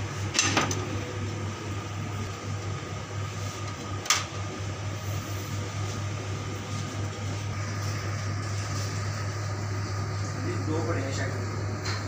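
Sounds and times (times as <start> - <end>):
machine hum: 0.0 - 12.0.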